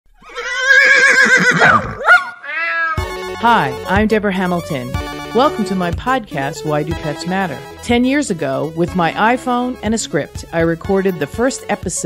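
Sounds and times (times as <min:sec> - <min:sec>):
horse whinnying: 0:00.2 - 0:03.1.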